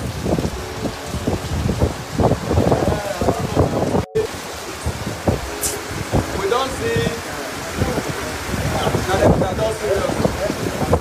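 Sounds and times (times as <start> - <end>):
rain pouring: 0.0 - 11.0.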